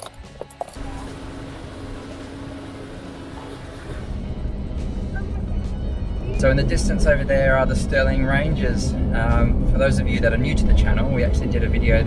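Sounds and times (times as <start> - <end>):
road and engine rumble in cabin: 0.0 - 12.0.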